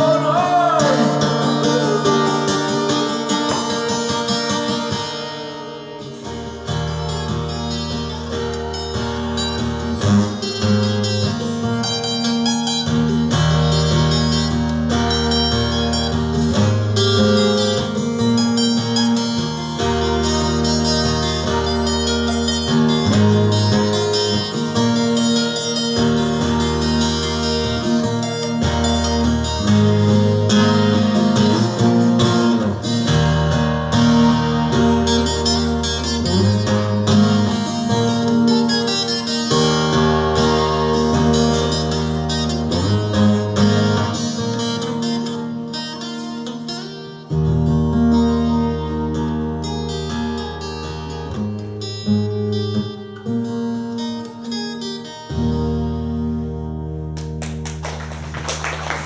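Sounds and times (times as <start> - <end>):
acoustic guitar picking chords: 0.0 - 59.0.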